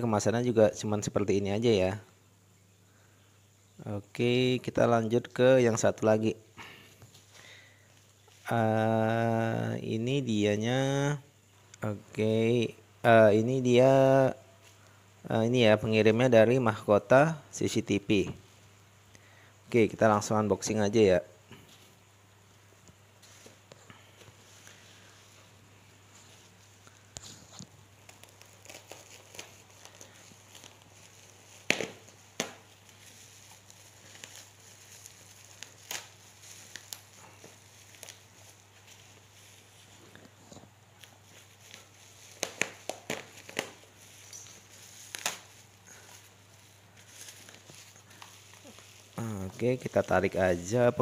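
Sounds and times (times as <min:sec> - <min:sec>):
plastic wrapping crinkling and tearing: 0:26.2 - 0:51.0.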